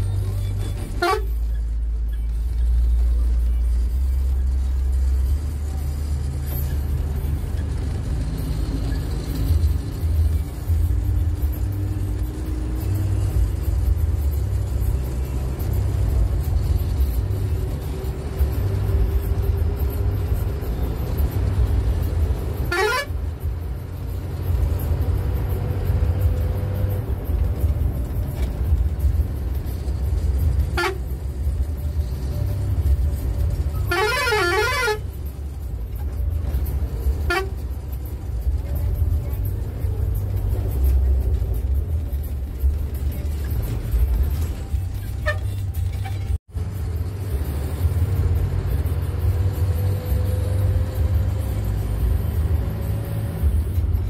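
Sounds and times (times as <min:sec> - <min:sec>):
bus diesel engine drone: 0:00.0 - 0:54.0
vehicle horn toots and whoops: 0:22.7 - 0:23.1, 0:33.8 - 0:35.0.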